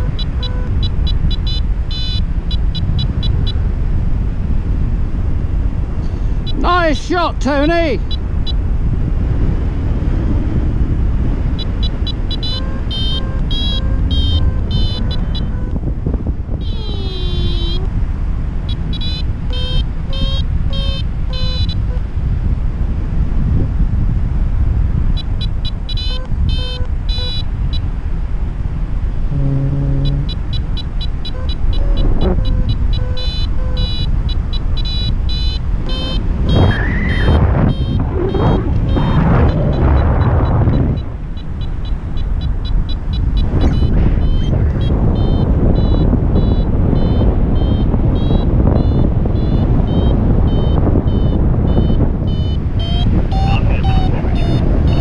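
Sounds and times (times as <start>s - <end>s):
variometer beeping: 0.0s - 3.8s, 6.4s - 9.0s, 11.1s - 18.0s, 18.6s - 22.0s, 25.1s - 28.0s, 29.2s - 55.0s
wind rushing over microphone: 0.0s - 55.0s.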